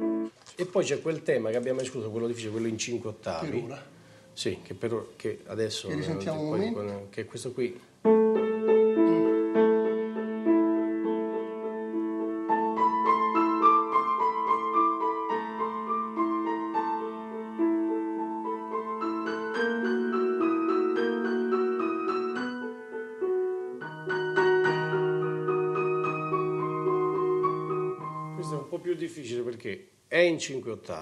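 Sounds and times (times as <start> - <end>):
grand piano playing: 0.0 - 4.5, 8.0 - 29.4.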